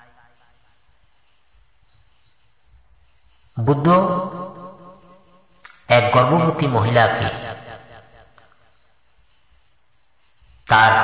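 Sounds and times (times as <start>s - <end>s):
man chanting: 3.6s - 4.6s, 5.9s - 8.0s, 10.7s - 11.0s.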